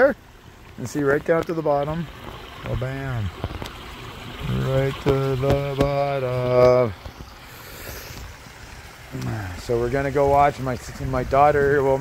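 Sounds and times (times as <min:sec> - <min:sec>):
pond waterfall rushing: 0:00.0 - 0:12.0.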